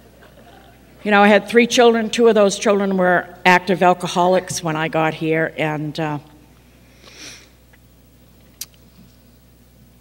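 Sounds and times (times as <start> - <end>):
low steady hum: 0.0 - 10.0
woman sniffing: 7.0 - 7.6.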